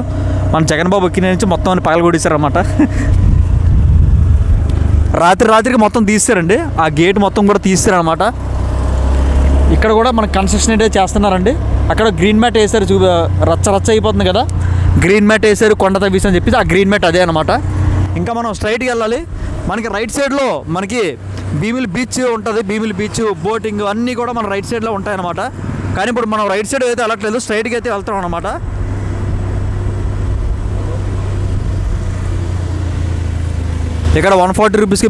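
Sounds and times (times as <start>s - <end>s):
man talking: 0.0s - 3.0s, 5.1s - 8.4s, 9.7s - 28.7s, 34.1s - 35.0s
motorbike engine hum: 0.0s - 35.0s
wind noise on microphone: 2.9s - 5.1s
motorbike engine running: 27.4s - 35.0s.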